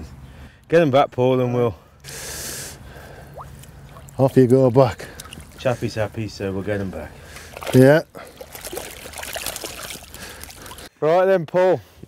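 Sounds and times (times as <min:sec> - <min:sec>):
water sloshing and splashing: 0:03.1 - 0:10.9.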